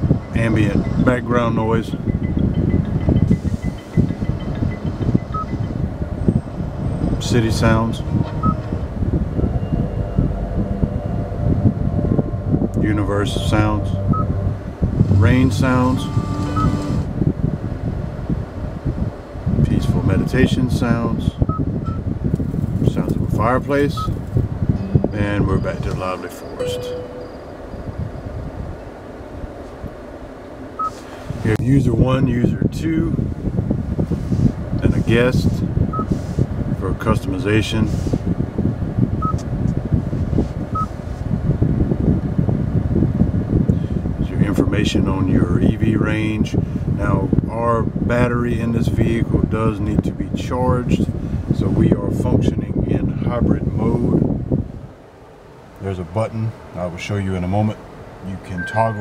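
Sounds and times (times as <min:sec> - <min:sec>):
low rustling rumble: 0:00.0 - 0:26.2, 0:27.3 - 0:58.5
low rumble with knocks: 0:02.0 - 0:18.0
brief higher note: 0:08.0 - 0:17.2, 0:26.6 - 0:27.5
short high beep: 0:09.4 - 0:12.2, 0:13.3 - 0:17.1, 0:26.6 - 0:27.6, 0:58.6 - 0:59.0.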